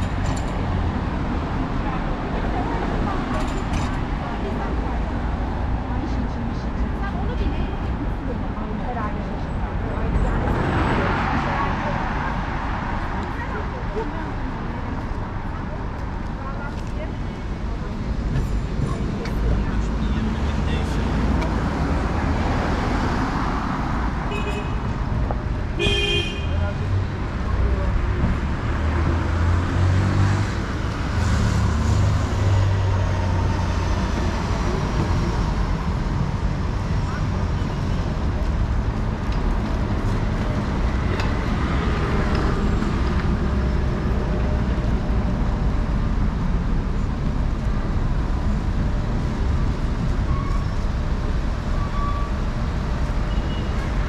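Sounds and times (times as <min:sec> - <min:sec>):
road traffic rumble: 0:00.0 - 0:54.0
car horn toot: 0:25.8 - 0:26.6.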